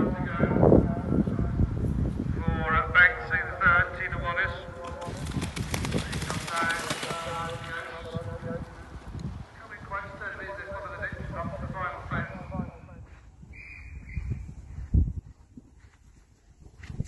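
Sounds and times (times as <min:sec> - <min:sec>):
hoofbeats on turf: 0:14.1 - 0:17.0.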